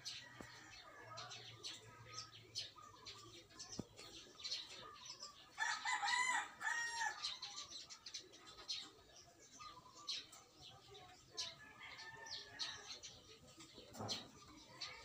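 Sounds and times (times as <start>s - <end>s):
small birds chirping: 0.0s - 15.0s
rooster crowing: 5.6s - 7.3s.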